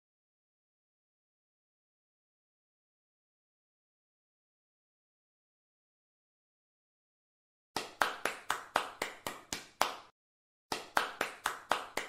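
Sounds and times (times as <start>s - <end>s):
rhythmic claps: 7.8s - 10.1s, 10.7s - 12.0s.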